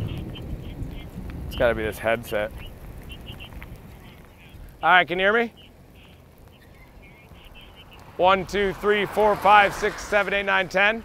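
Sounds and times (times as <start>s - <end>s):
faint high chirps: 5.5s - 8.1s
man's voice: 8.2s - 11.0s.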